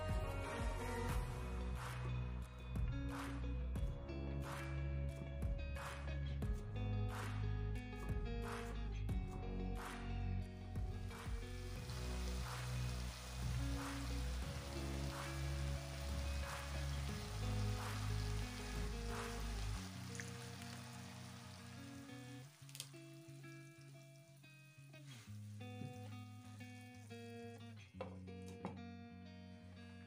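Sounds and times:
background music with steady beat: 0:00.0 - 0:22.5
food sizzling in a pan: 0:10.9 - 0:27.8.

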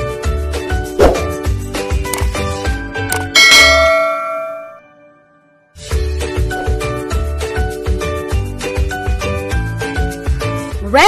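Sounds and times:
jingle music: 0:01.4 - 0:04.9
bell-like ding: 0:03.3 - 0:05.1.

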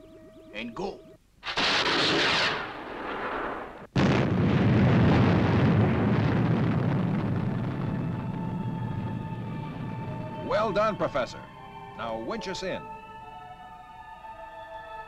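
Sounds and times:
rocket launch hissing blast: 0:01.4 - 0:04.7
loud explosion with low rumble: 0:01.5 - 0:10.9.

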